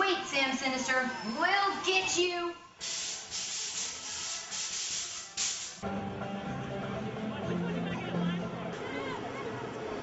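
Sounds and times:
bursts of hissing: 2.8 - 5.8.

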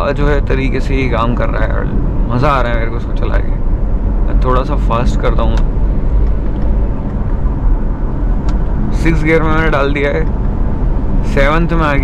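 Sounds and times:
engine and road noise in car: 0.0 - 12.0.

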